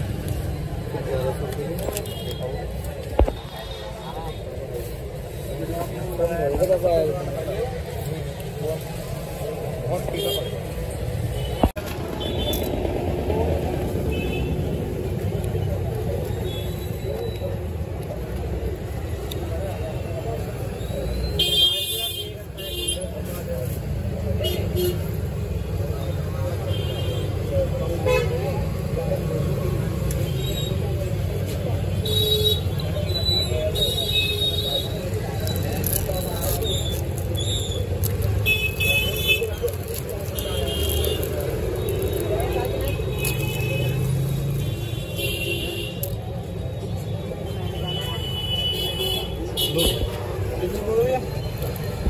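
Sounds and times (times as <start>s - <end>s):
traffic: 0.0s - 52.0s.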